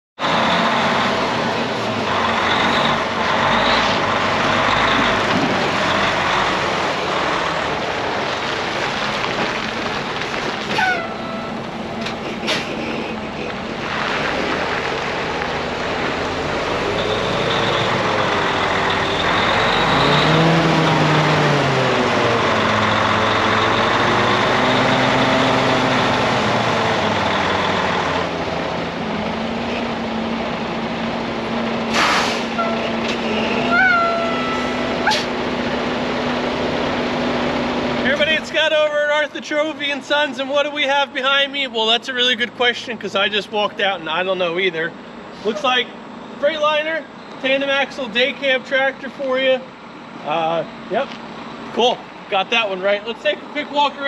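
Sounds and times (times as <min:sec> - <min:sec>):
diesel truck engine under load: 0:00.2 - 0:54.0.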